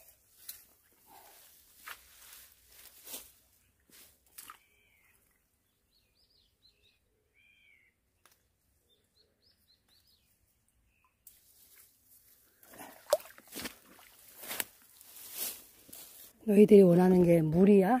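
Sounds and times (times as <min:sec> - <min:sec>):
hands rustling weeds: 0:00.0 - 0:04.5, 0:11.3 - 0:12.6, 0:13.5 - 0:17.4
faint high bird chirps: 0:04.4 - 0:11.3.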